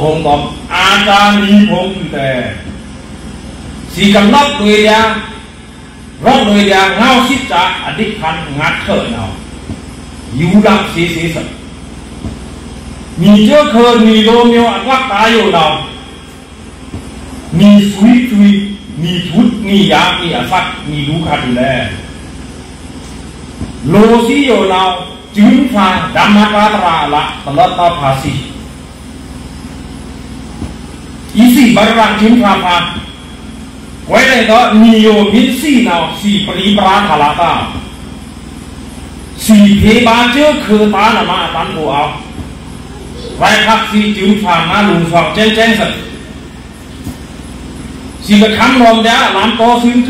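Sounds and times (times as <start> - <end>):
man speaking amplified: 0.0 - 3.0, 3.7 - 12.4, 13.0 - 22.4, 23.8 - 28.8, 31.2 - 38.2, 39.2 - 46.7, 48.1 - 50.0
low background rumble and hiss: 0.0 - 50.0.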